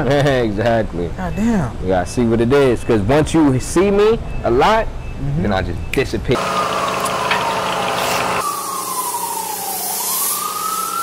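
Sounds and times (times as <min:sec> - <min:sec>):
low street hum: 0:00.0 - 0:09.7
siren wailing: 0:06.4 - 0:11.0.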